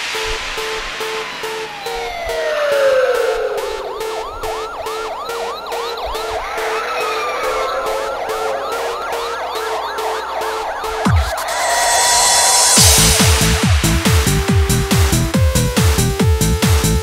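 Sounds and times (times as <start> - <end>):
siren-like wailing effect: 0.0 - 14.6
pulsing synth beat: 0.0 - 17.0.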